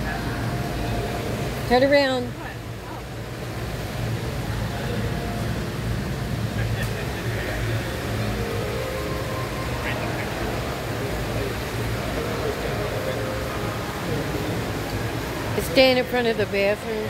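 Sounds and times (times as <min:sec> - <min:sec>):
continuous low rumble: 0:00.0 - 0:17.0
faint distant voices: 0:00.0 - 0:17.0.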